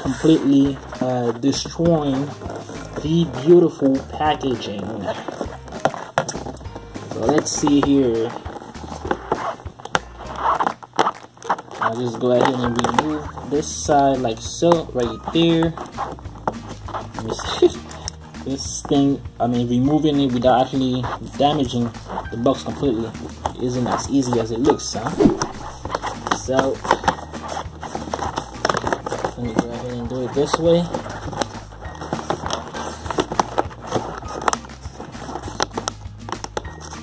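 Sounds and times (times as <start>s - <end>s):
plastic box clicking and crackling: 3.0s - 13.5s, 21.6s - 37.0s.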